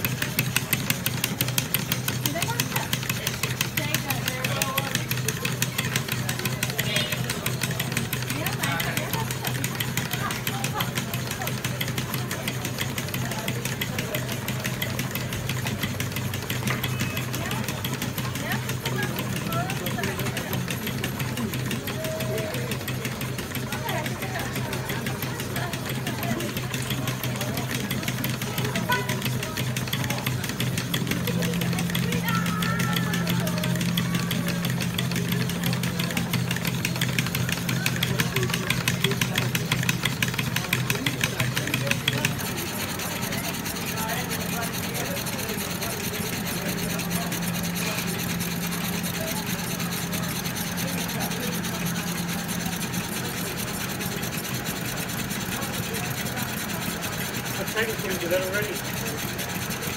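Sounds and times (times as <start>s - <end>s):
model steam engines clicking: 0.0s - 59.9s
people chattering faintly: 0.0s - 59.9s.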